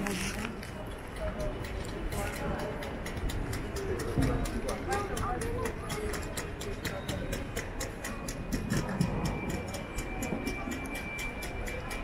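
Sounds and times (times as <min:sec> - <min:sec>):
murmur of voices: 0:00.0 - 0:12.0
rapid even clicking: 0:01.1 - 0:12.0.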